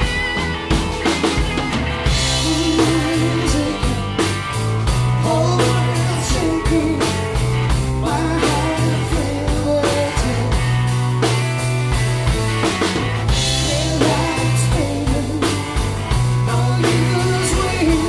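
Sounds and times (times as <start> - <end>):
rock band playing: 0.0 - 18.0.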